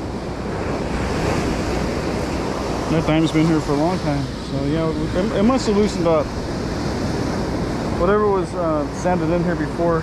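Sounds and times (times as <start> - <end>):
ocean surf washing on beach: 0.0 - 10.0
wind buffeting microphone: 0.0 - 10.0.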